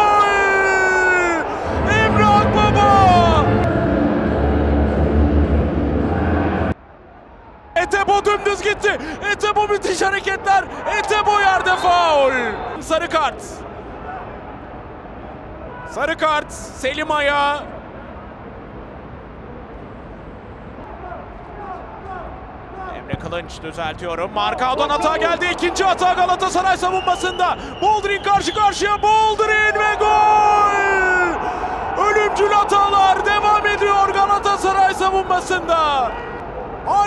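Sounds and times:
stadium crowd roaring: 0.0 - 18.2, 20.8 - 23.1, 24.4 - 37.0.

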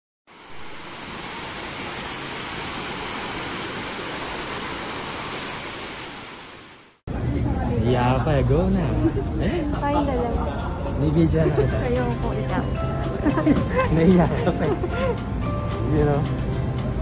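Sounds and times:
steady rushing hiss: 0.3 - 7.0.

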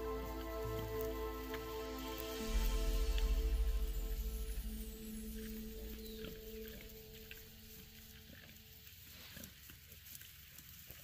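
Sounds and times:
soft background music: 0.0 - 8.9.

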